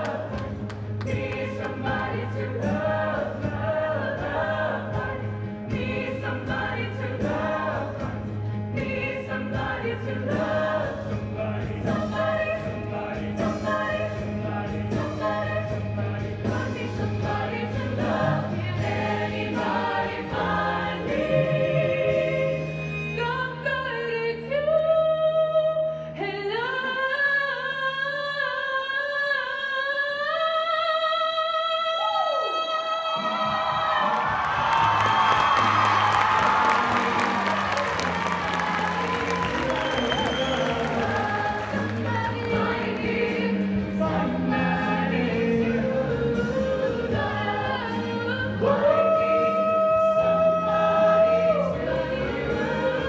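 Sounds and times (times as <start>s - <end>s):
choir singing: 0.0s - 22.8s, 34.0s - 53.0s
woman singing with vibrato: 36.4s - 45.8s.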